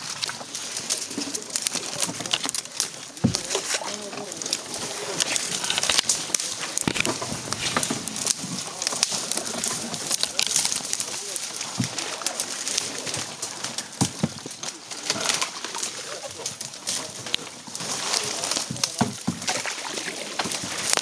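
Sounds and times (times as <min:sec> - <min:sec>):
twigs scraping against canoe: 0:00.0 - 0:21.0.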